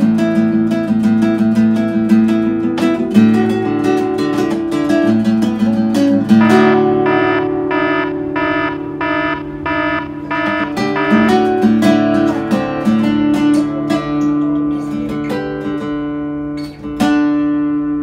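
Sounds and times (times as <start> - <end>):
acoustic guitar: 0.0 - 18.0.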